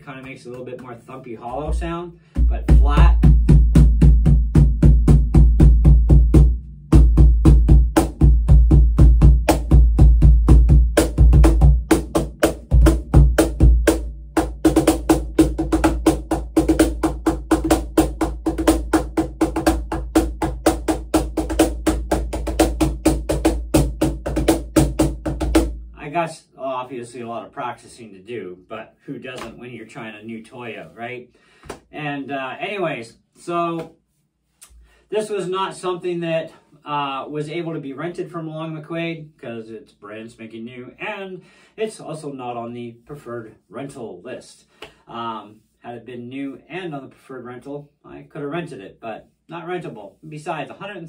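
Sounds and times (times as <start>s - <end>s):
cajon played with hands: 0.2s - 25.8s.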